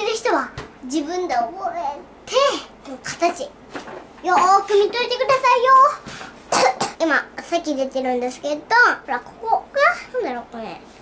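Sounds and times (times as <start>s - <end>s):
girl coughing: 6.5s - 7.1s.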